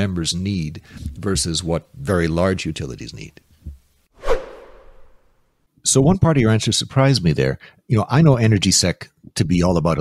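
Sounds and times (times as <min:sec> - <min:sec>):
whoosh sound effect: 0:04.2 - 0:05.4.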